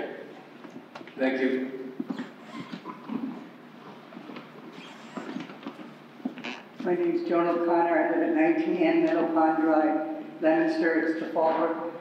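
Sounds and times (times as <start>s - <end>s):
people shuffling and rustling: 2.0s - 7.7s.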